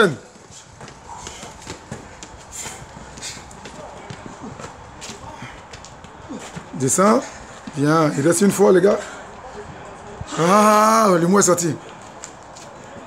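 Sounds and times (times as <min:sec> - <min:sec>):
footsteps running up concrete stairs: 0:00.0 - 0:13.0.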